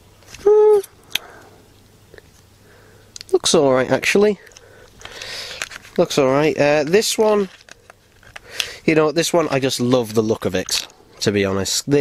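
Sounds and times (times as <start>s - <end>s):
man humming: 0.4s - 0.9s.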